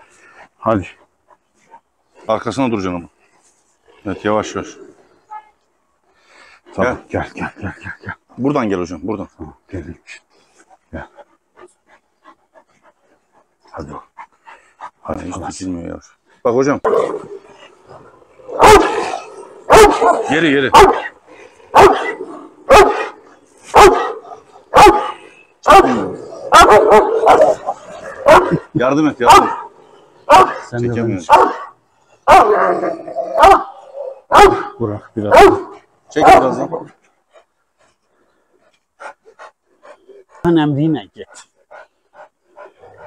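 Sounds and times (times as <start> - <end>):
dog panting: 0.1 - 2.3, 10.2 - 16.5, 35.6 - 43.0
large dog barking deep: 14.8 - 15.8, 16.8 - 37.0.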